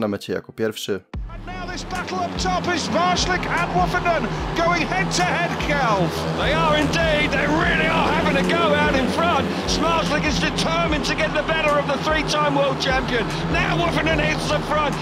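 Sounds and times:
low drone: 1.3s - 15.0s
motorcycle engines racing: 1.4s - 15.0s.

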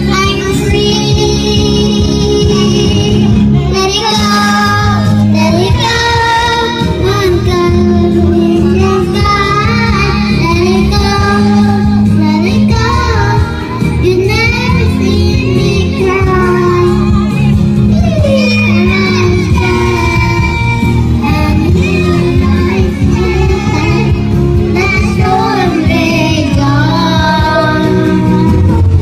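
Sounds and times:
girls singing together: 0.0s - 17.3s, 18.2s - 29.0s
backing music: 0.0s - 29.0s.

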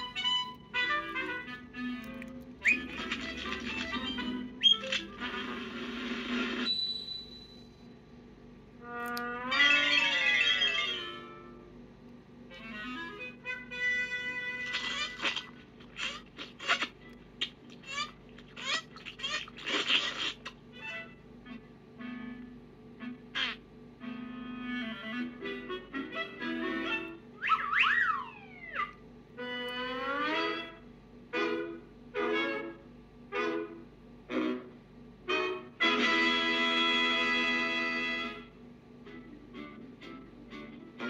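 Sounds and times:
sliding squawk-like figures: 2.6s - 5.4s, 14.6s - 21.0s, 27.4s - 28.9s.

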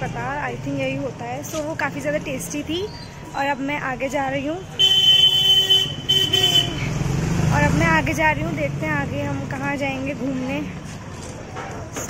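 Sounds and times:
vehicle horn honking: 4.8s - 6.8s.

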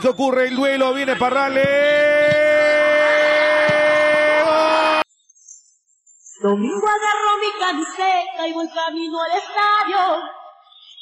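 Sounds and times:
commentator's long held shout: 1.7s - 5.0s.

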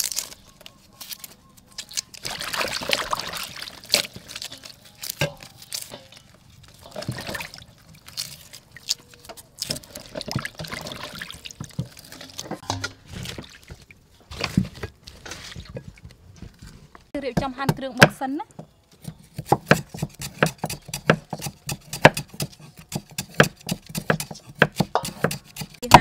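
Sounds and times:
water splashing in metal basin: 2.2s - 9.0s, 9.6s - 14.5s.

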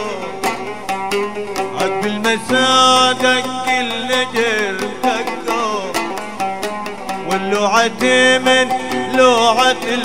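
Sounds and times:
man singing folk song: 0.0s - 10.0s
plucked lute notes: 0.0s - 10.0s.

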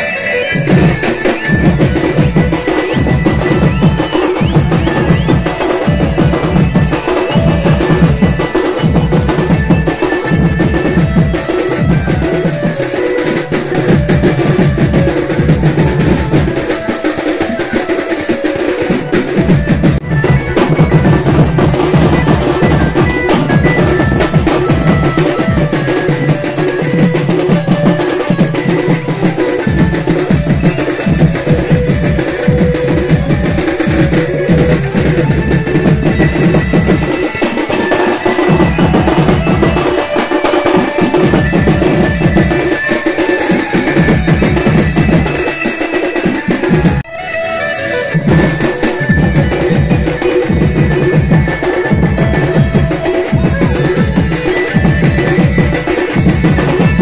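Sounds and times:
rapid dense drumming: 0.0s - 47.1s, 48.0s - 57.0s.

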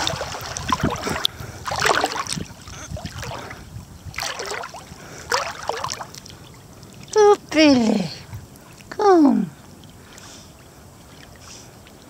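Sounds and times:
water sloshing from swimming: 0.0s - 12.0s.

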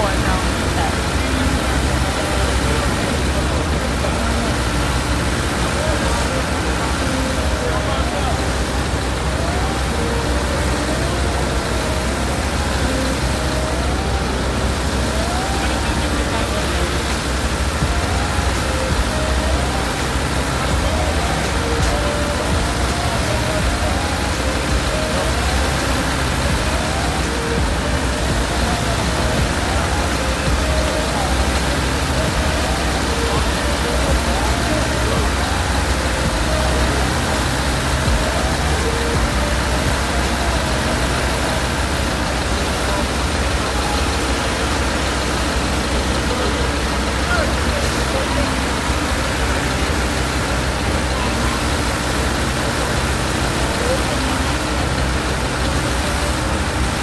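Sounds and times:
background voices: 0.0s - 57.0s
low rumble of vehicle engines: 0.0s - 57.0s.

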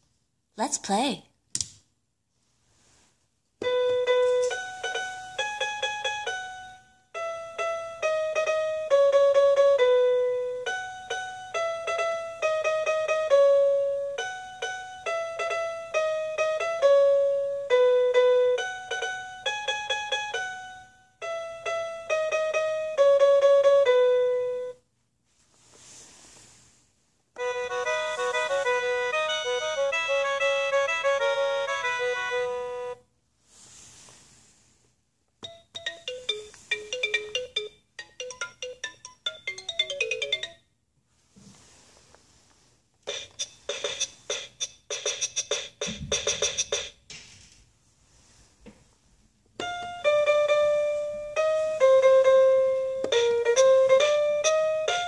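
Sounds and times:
tinny piano melody: 3.6s - 24.8s, 27.4s - 33.0s, 49.6s - 55.0s
tinny horn tune: 27.4s - 33.0s
xylophone-like notes: 27.4s - 33.0s, 35.4s - 40.6s
short hiss: 33.4s - 34.9s.

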